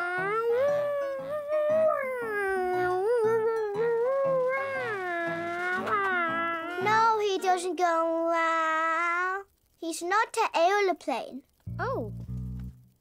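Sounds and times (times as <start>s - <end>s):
cartoon child making flying noise: 4.2s - 6.9s
background music with steady beat: 11.6s - 13.0s.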